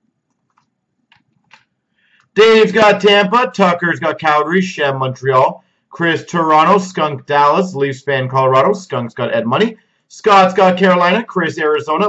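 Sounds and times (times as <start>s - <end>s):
computer mouse clicks: 0.2s - 2.3s.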